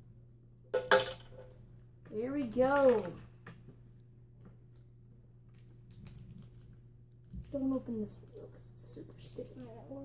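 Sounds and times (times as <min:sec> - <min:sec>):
steady low hum: 0:00.0 - 0:10.0
plastic candy wrappers crinkling: 0:04.7 - 0:09.9.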